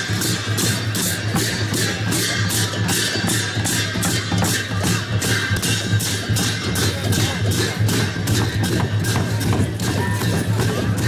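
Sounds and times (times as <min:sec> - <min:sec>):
barrel drum played in steady rhythm: 0:00.0 - 0:11.0.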